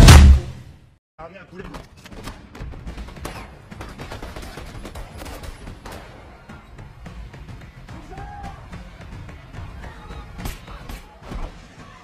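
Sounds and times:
gunshots: 0.0 - 0.7, 2.1 - 6.6.

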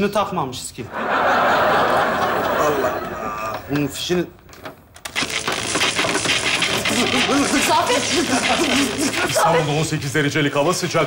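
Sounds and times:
electric shock crackling buzz: 5.0 - 9.8.

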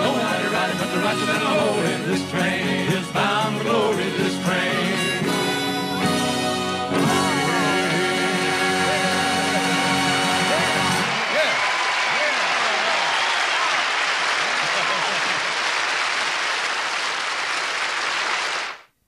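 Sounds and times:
audience applauding and cheering: 9.3 - 18.9.

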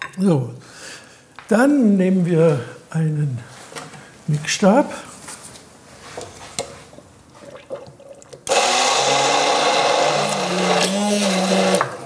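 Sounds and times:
immersion blender running: 8.5 - 12.0.

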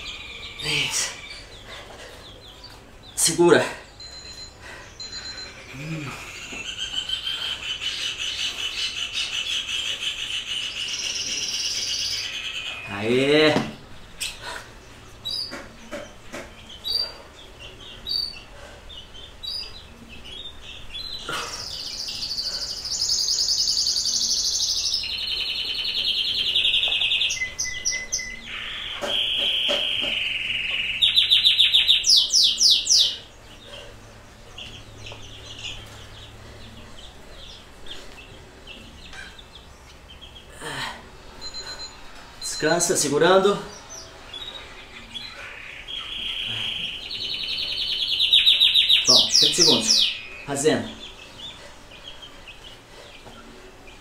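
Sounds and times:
songbird singing: 0.0 - 54.0
loud fast bird trill: 21.7 - 33.3, 45.0 - 51.1.

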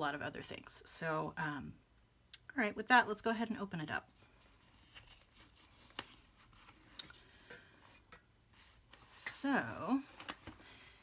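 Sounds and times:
soft rustling: 4.0 - 10.6.

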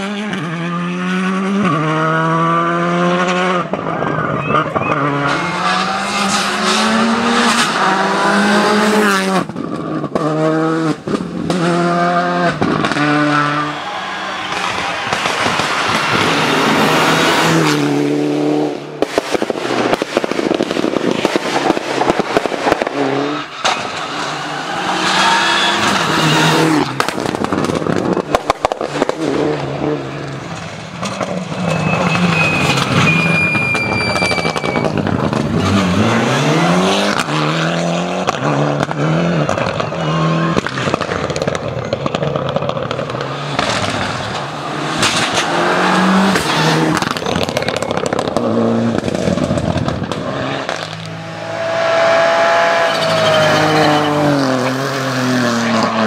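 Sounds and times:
rally car engines revving hard: 0.0 - 56.0
sharp bangs: 12.5 - 18.0, 43.5 - 54.4.

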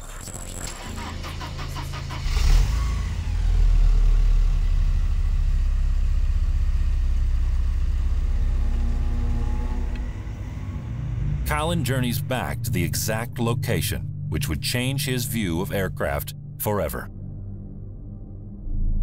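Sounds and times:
car engine cranking and starting: 0.0 - 13.1
car engine rumbling: 0.0 - 18.1.

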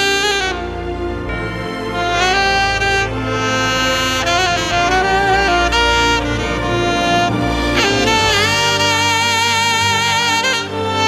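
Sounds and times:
saxophone melody: 0.0 - 11.0.

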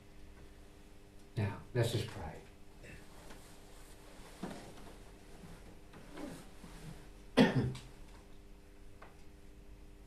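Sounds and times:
faint room hum: 0.0 - 10.0
person coughing: 7.4 - 7.8.

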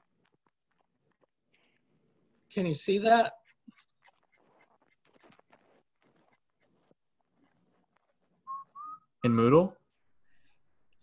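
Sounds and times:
short whistle-like tones: 8.4 - 9.3.

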